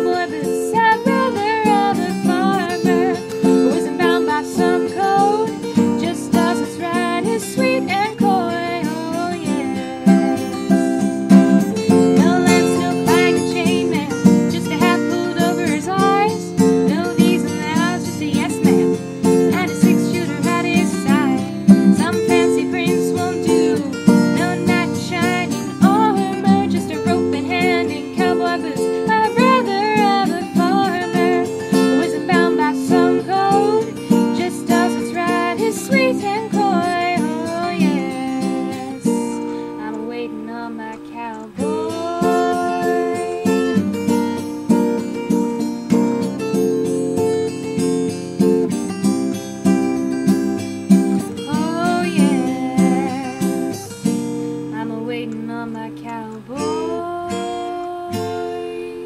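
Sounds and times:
acoustic guitar strumming chords: 0.0s - 59.0s.

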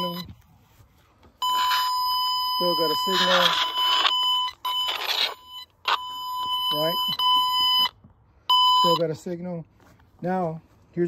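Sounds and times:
tone probe high beep: 0.0s - 0.3s, 1.4s - 9.0s.

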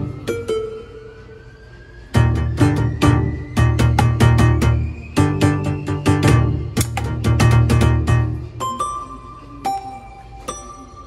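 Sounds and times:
electronic drum pads plucked tones: 0.0s - 0.8s, 2.1s - 10.7s.

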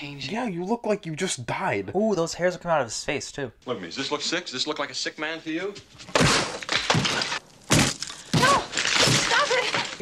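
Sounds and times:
wood splintering crack: 6.1s - 10.0s.

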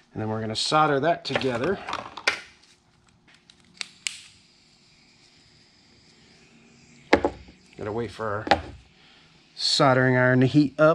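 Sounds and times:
faint steady hum: 0.0s - 10.9s.

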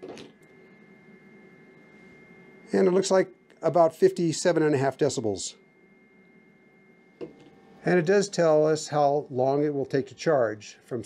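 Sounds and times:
high electronic whine: 0.0s - 11.0s.

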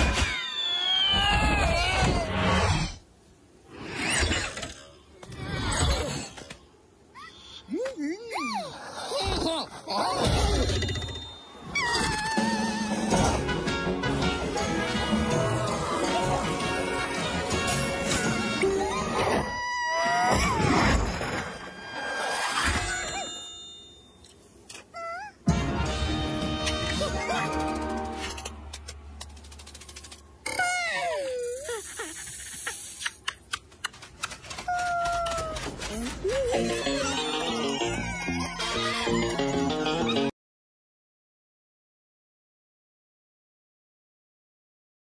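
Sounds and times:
cartoon music: 25.2s - 28.2s, 36.2s - 40.3s.

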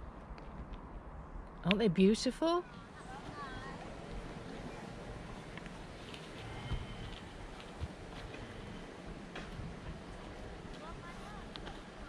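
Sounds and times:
wind rumble on microphone: 3.8s - 12.0s.

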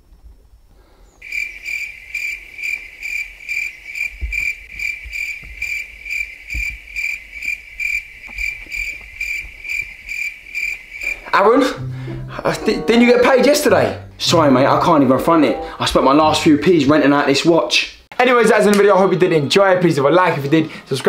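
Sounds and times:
cricket chirping: 1.2s - 11.4s.

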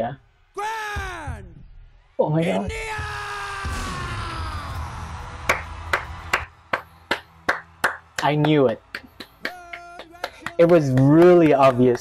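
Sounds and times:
man clapping hands: 5.4s - 12.0s.

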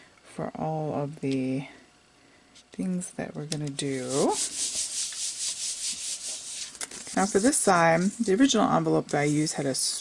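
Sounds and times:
palm swishing on paper: 3.9s - 8.5s.

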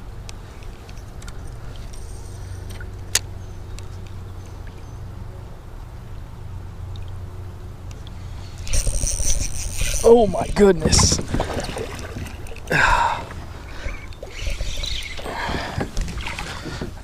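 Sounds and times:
fishing reel handling clicks: 8.0s - 10.6s
wind rumble on microphone: 8.7s - 12.4s.

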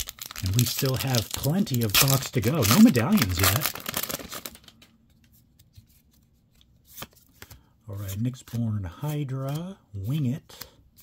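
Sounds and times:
card and foil wrapper rustling: 0.0s - 5.0s
cards clicking and sliding: 4.0s - 11.0s.

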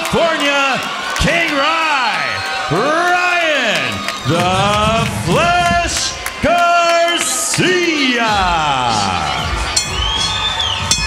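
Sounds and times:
crowd cheering: 0.0s - 11.0s
music with a steady beat: 8.3s - 11.0s
sharp clinks: 9.8s - 10.2s, 10.8s - 11.0s.

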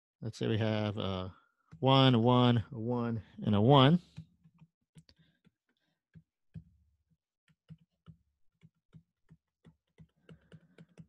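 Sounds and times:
stylus tapping on tablet screen: 4.1s - 11.0s.

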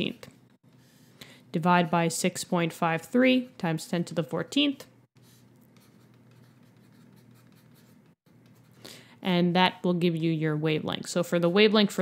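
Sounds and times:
stylus scratching on screen: 5.1s - 8.9s.

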